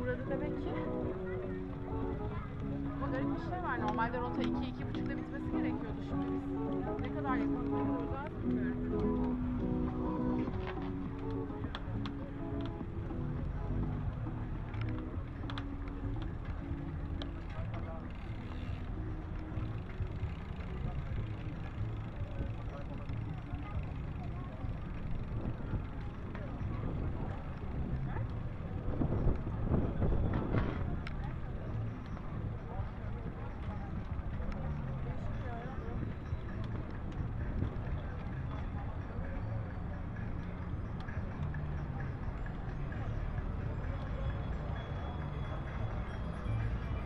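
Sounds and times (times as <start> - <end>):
bicycle rolling noise: 0.0 - 47.0
indistinct voices of riders: 0.0 - 47.0
wind on microphone: 25.0 - 31.6.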